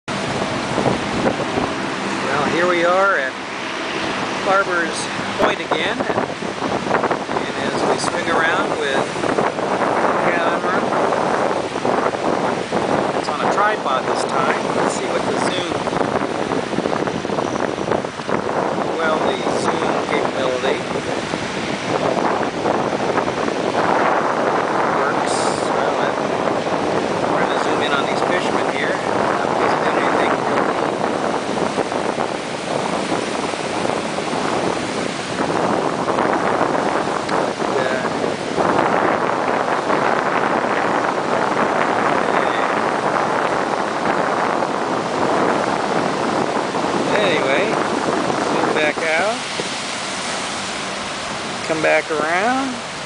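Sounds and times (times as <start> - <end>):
wind on microphone: 0.0 - 53.0
surf breaking over rocks: 0.1 - 53.0.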